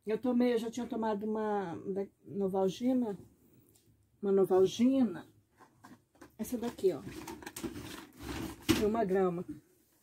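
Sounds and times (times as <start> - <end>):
woman speaking: 0.0 - 3.3, 4.2 - 5.3, 6.4 - 7.1, 8.7 - 9.7
cardboard box rustling and scraping: 7.0 - 8.7.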